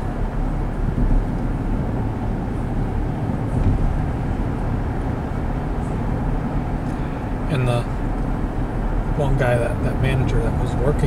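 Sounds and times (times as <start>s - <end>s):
road and tyre noise in car: 0.0s - 11.0s.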